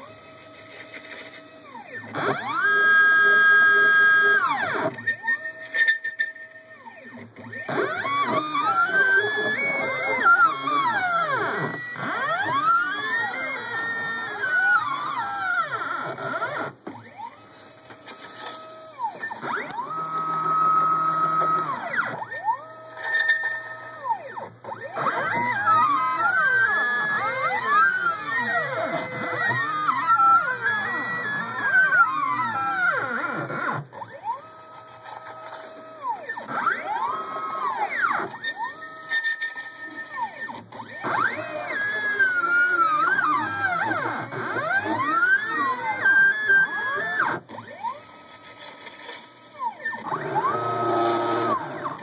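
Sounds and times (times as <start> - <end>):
stepper motors whining: 0.0 - 52.0.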